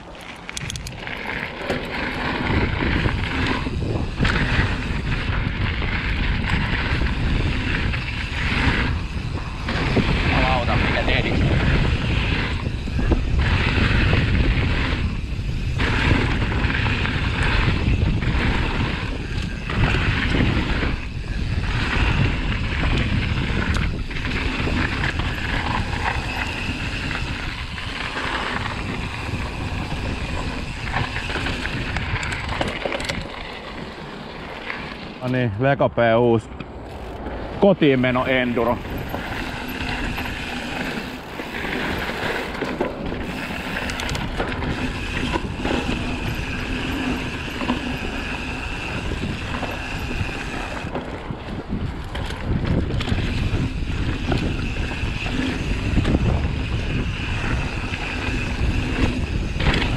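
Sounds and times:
bike knocking and rattling: 0.0s - 35.5s, 36.5s - 59.9s
bike tyres on dirt: 0.0s - 59.9s
wind buffeting microphone: 0.0s - 59.9s.

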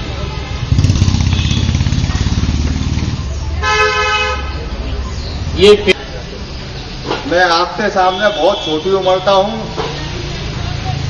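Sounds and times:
vehicle engine rumbling: 0.0s - 7.4s
vehicle horn honking: 1.2s - 1.9s, 3.6s - 4.6s.

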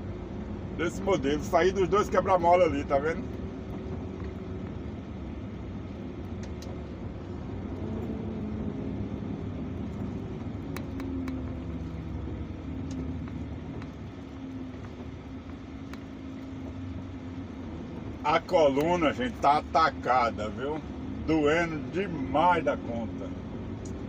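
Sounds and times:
road noise: 0.0s - 24.0s
truck diesel engine running: 0.0s - 24.0s
faint clicks: 6.2s - 6.8s, 12.8s - 16.5s.

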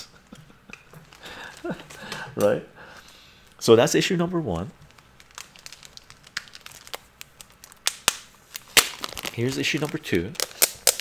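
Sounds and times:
plastic sleeve crinkling: 4.5s - 11.0s.

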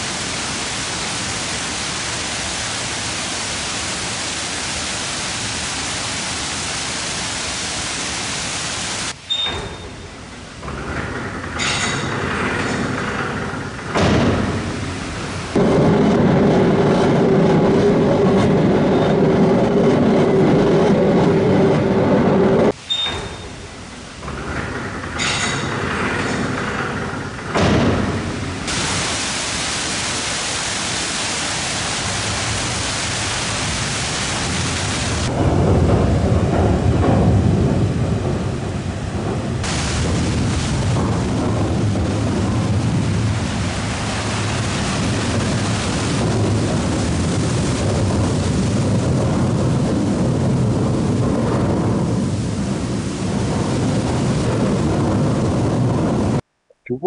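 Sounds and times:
water rushing through water wheel: 0.0s - 56.4s
heavy rumble: 10.2s - 22.8s, 23.7s - 57.0s.

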